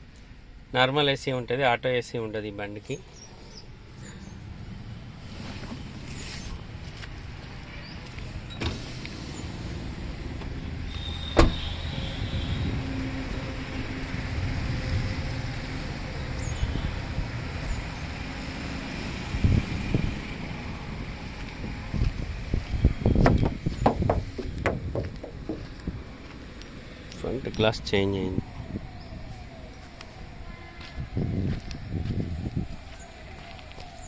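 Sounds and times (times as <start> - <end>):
car door slamming shut: 11.2 - 11.7, 23.2 - 25.7.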